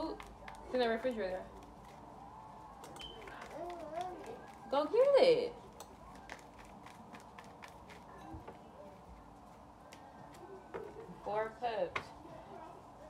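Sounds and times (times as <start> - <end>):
cards being shuffled: 2.8 - 5.1, 5.9 - 8.2.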